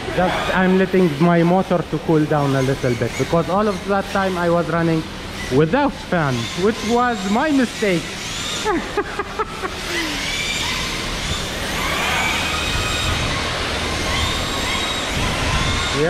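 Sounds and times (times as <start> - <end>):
rc drift cars squealing: 0.0 - 16.0.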